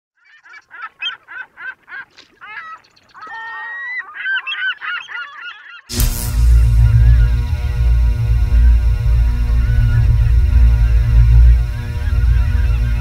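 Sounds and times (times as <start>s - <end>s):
geese honking: 0.2s - 13.0s.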